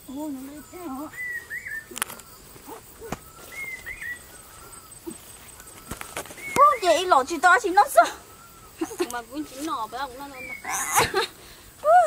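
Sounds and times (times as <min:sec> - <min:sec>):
birds chirping: 0:00.0 - 0:11.8.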